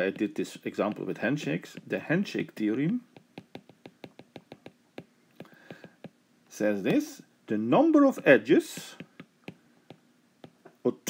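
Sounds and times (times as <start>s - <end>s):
stylus clicking on glass screen: 3.1s - 6.2s.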